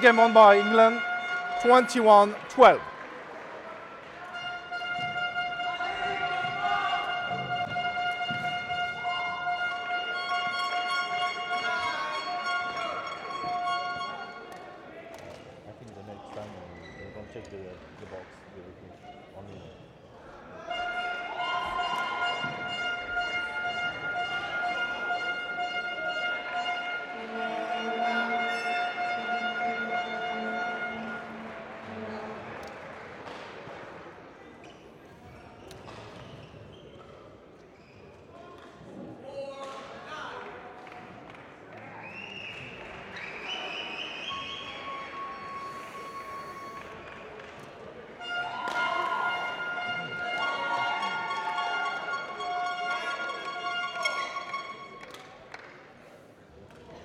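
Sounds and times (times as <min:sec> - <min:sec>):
long steady pitched tones: 0:00.0 - 0:02.8
people talking: 0:00.0 - 0:02.9.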